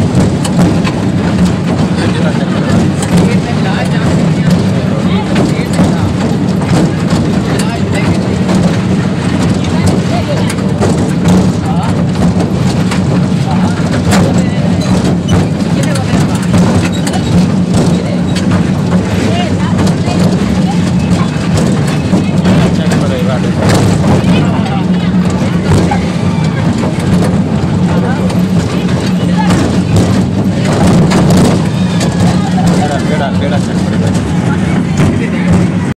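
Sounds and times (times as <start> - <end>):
miniature train engine drone: 0.0 - 35.9
people chattering: 0.0 - 35.9.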